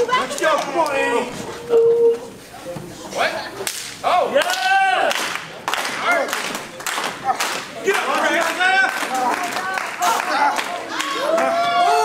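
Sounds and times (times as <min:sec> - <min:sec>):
sharp slap-like crack: 0:03.6 - 0:04.0.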